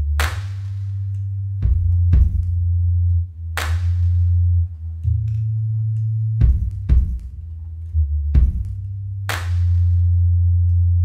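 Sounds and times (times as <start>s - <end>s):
held low bass note: 0.0s - 11.0s.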